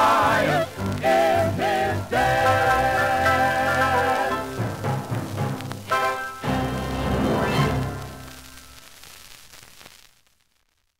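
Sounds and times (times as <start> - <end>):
record surface hiss: 0.0 - 10.9.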